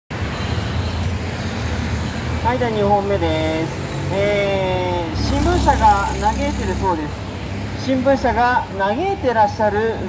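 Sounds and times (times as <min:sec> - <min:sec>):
city road traffic rumble: 0:00.1 - 0:10.0.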